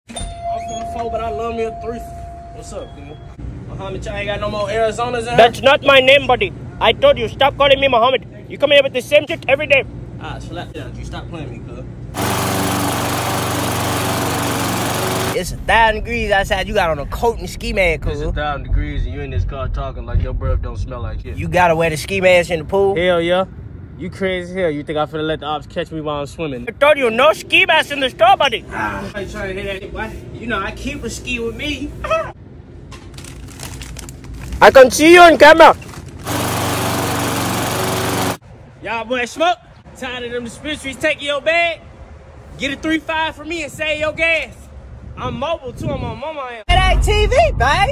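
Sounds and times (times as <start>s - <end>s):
lawn mower engine running: 12.2s - 15.4s, 36.2s - 38.4s.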